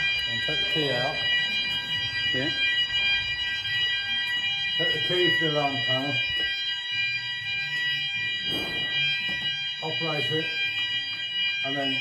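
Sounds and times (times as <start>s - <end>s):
fire alarm sounders: 0.0s - 12.0s.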